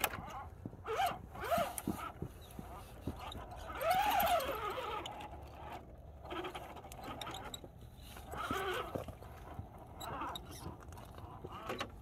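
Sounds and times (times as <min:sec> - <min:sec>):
electric motor and gearbox whining: 0:00.0 - 0:12.0.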